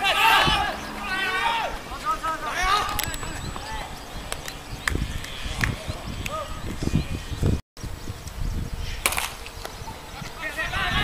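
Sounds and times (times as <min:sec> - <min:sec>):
people talking: 0:00.0 - 0:04.0, 0:10.2 - 0:11.0.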